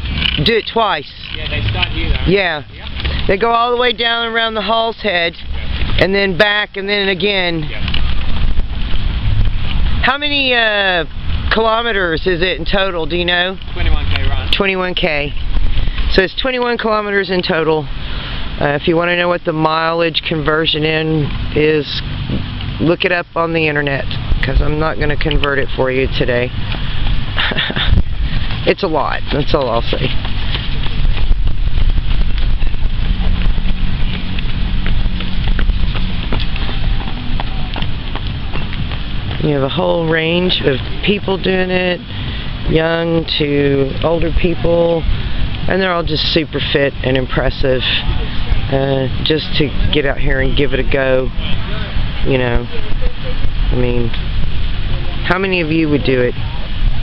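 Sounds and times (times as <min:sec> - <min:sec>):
footsteps on asphalt: 0:00.0 - 0:16.8, 0:23.6 - 0:55.3
outdoor hiss: 0:00.0 - 0:33.1
wind buffeting microphone: 0:00.0 - 0:57.0.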